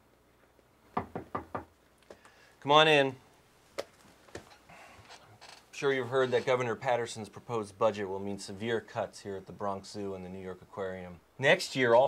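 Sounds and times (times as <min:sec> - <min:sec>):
knocks on a door: 0:01.0 - 0:01.7.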